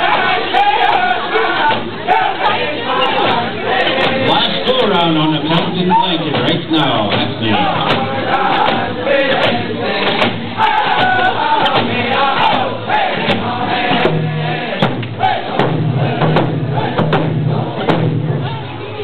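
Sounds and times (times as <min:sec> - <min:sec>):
crowd voices: 0:00.0 - 0:19.0
group of singers singing: 0:00.0 - 0:19.0
hand drums beating: 0:03.2 - 0:18.6.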